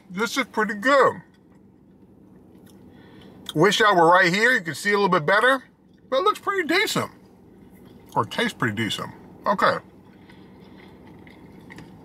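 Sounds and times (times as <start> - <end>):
car cabin hum: 0.0 - 12.0
man chewing food: 1.3 - 3.6, 7.4 - 8.3, 9.2 - 12.0.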